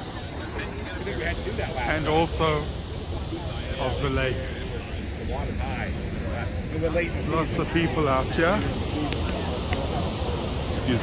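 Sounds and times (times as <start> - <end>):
people talking: 0.0 - 11.0
steady low rumble: 0.0 - 11.0.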